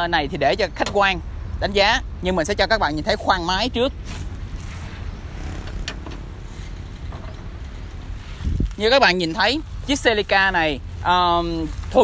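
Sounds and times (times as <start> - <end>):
wind rumble on microphone: 0.3 - 12.0.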